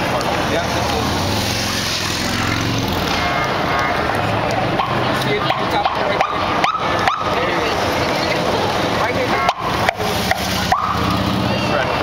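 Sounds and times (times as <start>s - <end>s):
large crowd voices: 0.0s - 12.0s.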